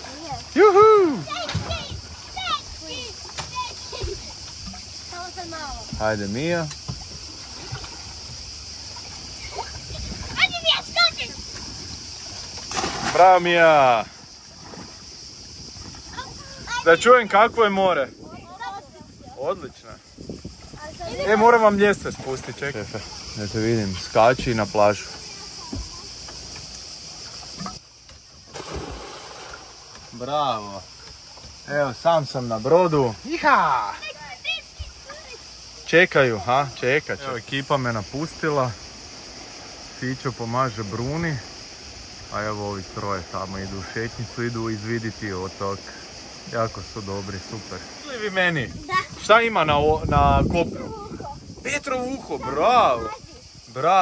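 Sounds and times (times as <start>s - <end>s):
children shouting: 0.0s - 4.2s
swimmers splashing: 0.0s - 17.0s
steady high hiss: 0.0s - 54.0s
water washing: 0.0s - 54.0s.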